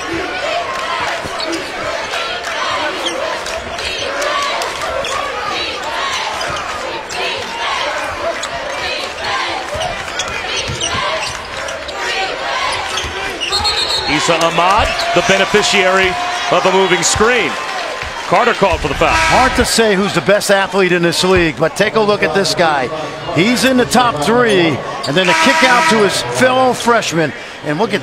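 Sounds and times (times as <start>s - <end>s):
arena crowd noise: 0.0s - 28.0s.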